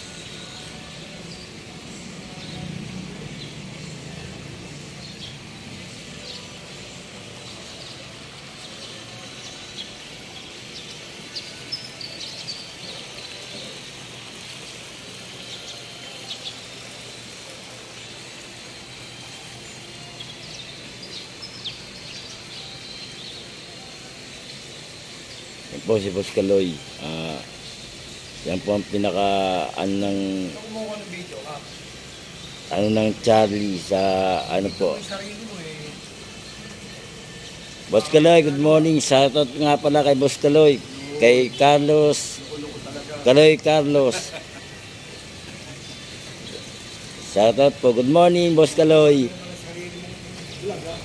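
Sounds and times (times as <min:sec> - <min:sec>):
outdoor background noise: 0:00.0 - 0:51.0
high bird chirps: 0:04.9 - 0:51.0.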